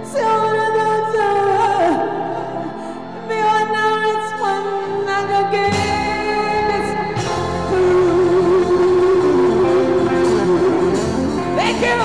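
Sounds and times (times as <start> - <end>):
live band music: 5.4 - 12.0.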